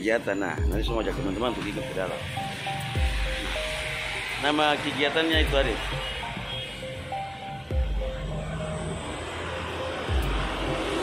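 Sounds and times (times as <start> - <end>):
vehicle engine passing: 1.8 - 11.0.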